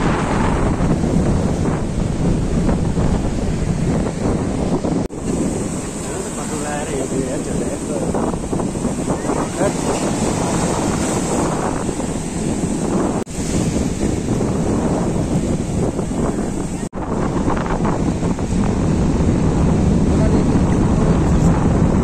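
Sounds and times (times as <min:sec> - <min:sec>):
waves breaking on sandy shore: 0:00.0 - 0:22.0
wind buffeting microphone: 0:00.0 - 0:22.0.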